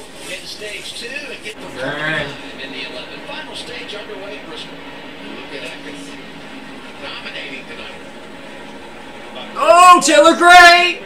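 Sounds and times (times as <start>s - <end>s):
race truck engines running: 0.0s - 11.0s
commentator talking: 9.4s - 11.0s.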